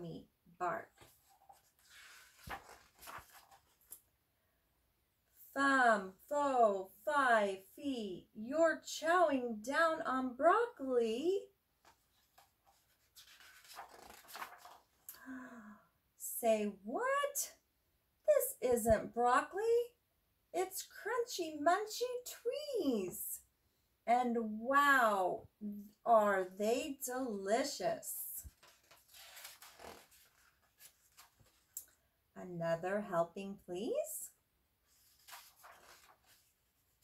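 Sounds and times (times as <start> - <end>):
paper page rustling: 0.9 - 4.1, 11.8 - 15.1, 28.5 - 31.8, 34.8 - 37.0.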